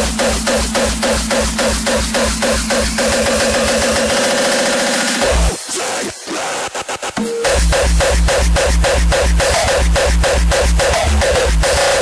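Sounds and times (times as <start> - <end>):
pounding kick drum: 0.0 - 5.6, 7.2 - 12.0
distorted synth buzzing tone: 7.2 - 12.0.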